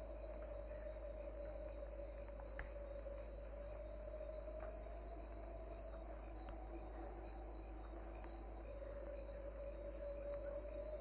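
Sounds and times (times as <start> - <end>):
low constant hum: 0.0 - 11.0.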